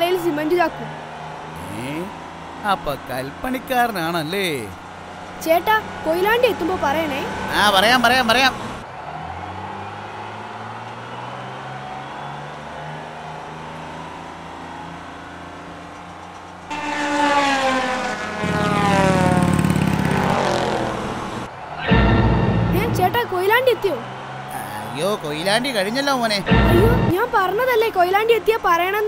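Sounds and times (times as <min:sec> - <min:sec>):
cartoon bus engine drone: 0:00.0 - 0:15.9, 0:16.7 - 0:25.4
deep rumble: 0:20.9 - 0:23.4, 0:26.4 - 0:27.2.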